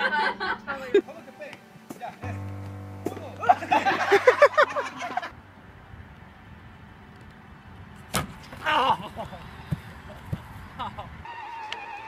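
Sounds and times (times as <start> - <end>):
low outdoor rumble: 2.2 - 11.3
sharp crack: 8.1 - 8.6.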